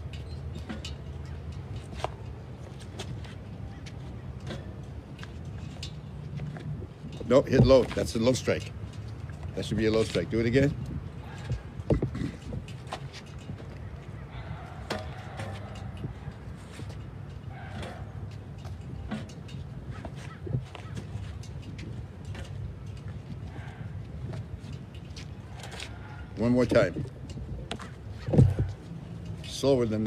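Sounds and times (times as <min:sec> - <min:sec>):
traffic noise: 0:00.0 - 0:30.0
wind rumble on microphone: 0:00.0 - 0:30.0.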